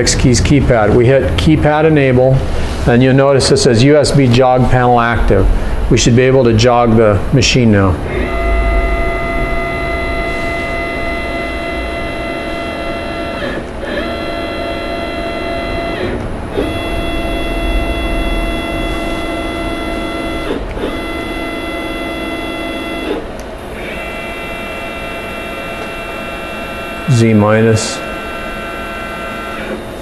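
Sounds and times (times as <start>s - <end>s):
stepper motors whining: 3.6s - 30.0s.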